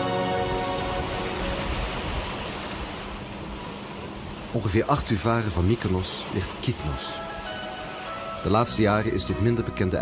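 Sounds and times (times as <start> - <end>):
sea water rushing: 0.0 - 10.0
wind: 0.0 - 10.0.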